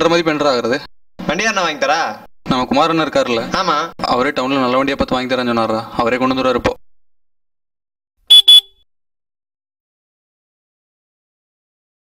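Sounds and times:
motorcycle horn honks: 8.3s - 8.8s.

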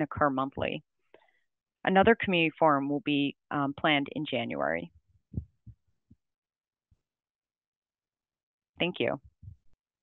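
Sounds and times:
soft low thumps: 4.9s - 6.2s, 9.1s - 9.8s.

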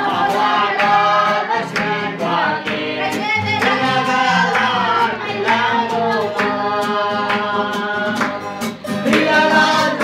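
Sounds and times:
group of voices singing: 0.0s - 10.0s
strummed acoustic guitar: 0.0s - 10.0s.

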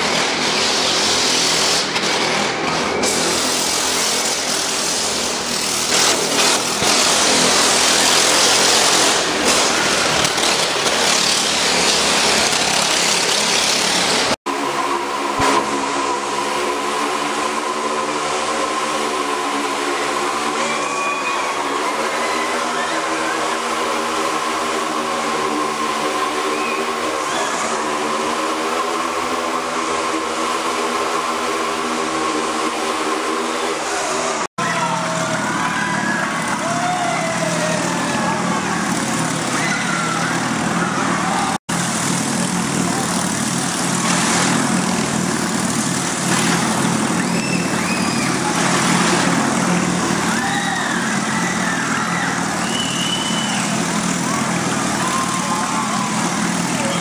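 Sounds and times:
motorcycle engine at high revs: 0.0s - 57.0s.

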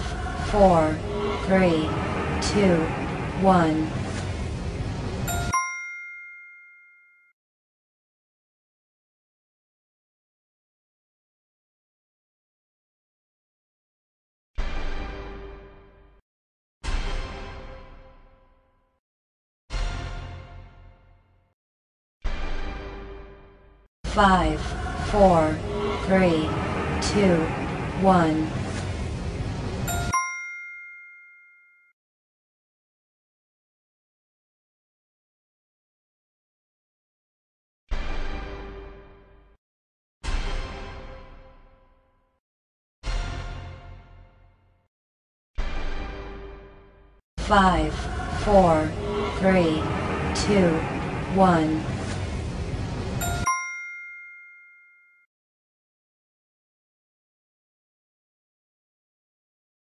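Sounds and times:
bright bell-like ding: 5.3s - 7.3s, 29.9s - 31.9s, 53.2s - 55.3s.

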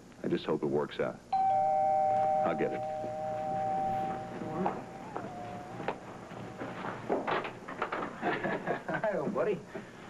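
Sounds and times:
two-note doorbell chime: 1.4s - 5.8s.

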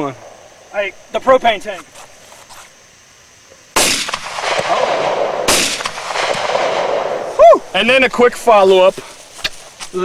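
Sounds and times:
rolling echo: 0.0s - 0.7s, 3.8s - 7.8s
rifle shots: 3.8s - 7.4s.

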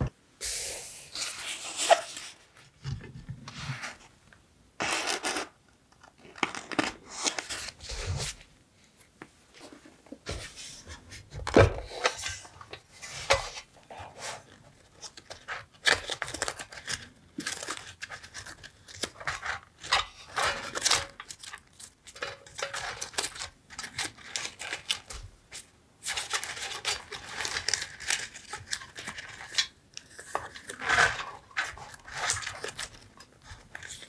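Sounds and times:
paper rustling and crinkling: 1.1s - 4.1s, 6.2s - 8.5s, 9.6s - 34.0s.

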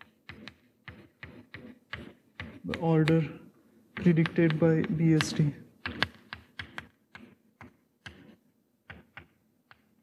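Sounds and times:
chalk tapping on blackboard: 0.0s - 10.0s.

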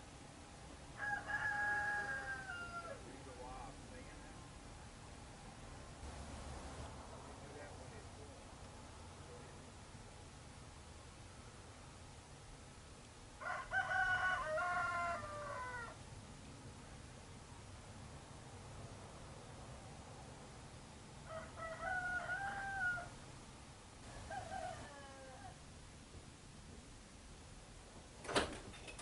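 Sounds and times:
rooster crowing: 1.0s - 3.1s, 13.4s - 16.0s, 21.2s - 23.2s, 24.0s - 25.6s.

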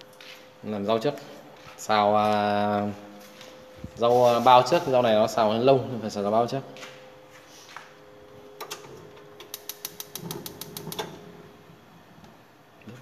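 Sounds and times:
gas igniter clicking: 9.4s - 11.2s.

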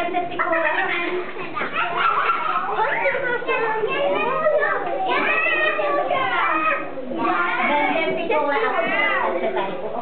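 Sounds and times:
young children chattering: 0.0s - 10.0s.

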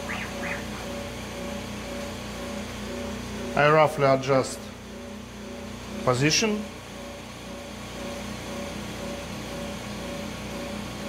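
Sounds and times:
low pulsing tone: 0.0s - 1.5s
router and vacuum pump humming: 0.0s - 11.0s.

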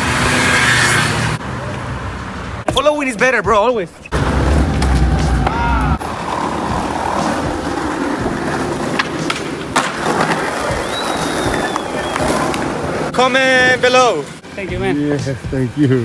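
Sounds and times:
skateboard wheels rolling on asphalt: 0.0s - 3.3s, 3.9s - 16.0s
skateboards clacking on ground: 4.6s - 12.8s.

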